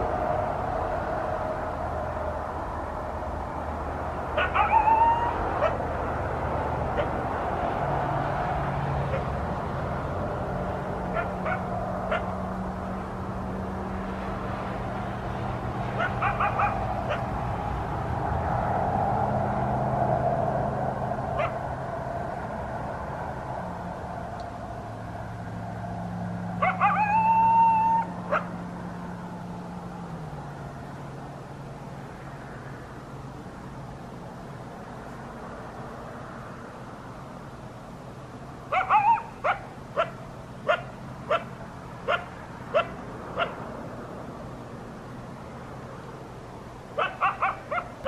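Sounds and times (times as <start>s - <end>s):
coyote yips and howl: 4.3s - 5.9s, 11.1s - 12.4s, 16.0s - 17.3s, 21.4s - 21.6s, 26.6s - 28.6s, 38.7s - 43.6s, 47.0s - 48.0s.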